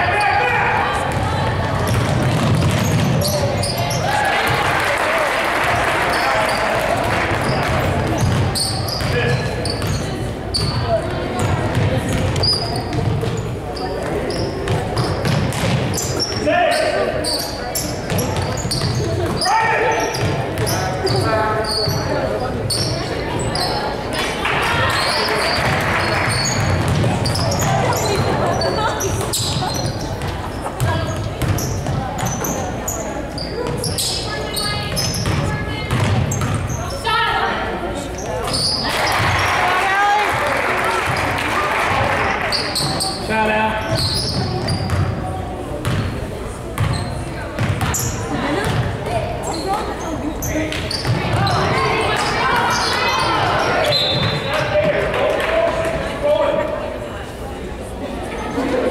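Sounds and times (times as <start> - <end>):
basketball bouncing on hardwood: 1.1 - 3.2, 35.2 - 36.6.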